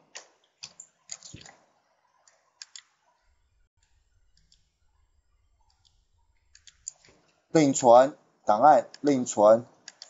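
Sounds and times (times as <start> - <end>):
keyboard and mouse clicks: 0.1 - 1.6, 2.2 - 3.0, 5.6 - 7.4.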